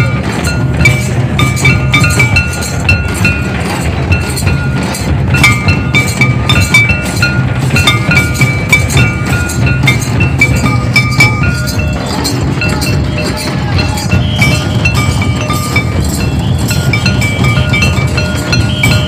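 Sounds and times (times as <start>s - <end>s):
barrel drums beating: 0.0s - 19.0s
metal percussion clinks: 0.0s - 19.0s.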